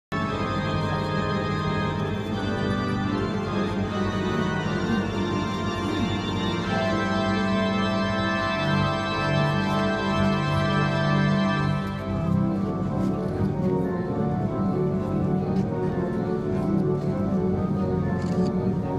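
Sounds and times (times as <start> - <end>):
organ chords: 0.1 - 18.9.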